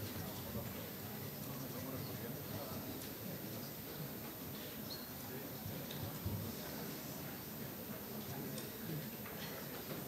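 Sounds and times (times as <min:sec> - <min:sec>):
seated audience room noise: 0:00.0 - 0:10.0.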